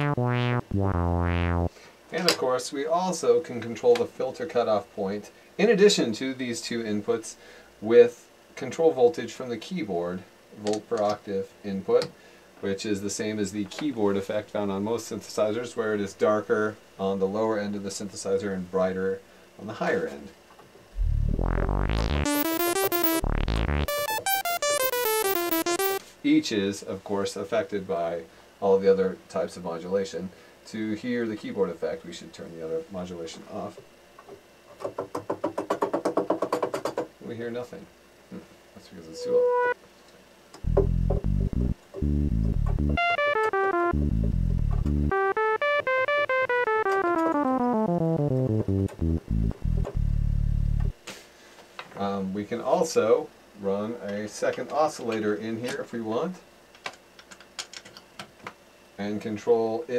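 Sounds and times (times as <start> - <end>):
synthesizer run of notes: 0.0 - 1.7, 21.0 - 26.0, 40.6 - 51.0.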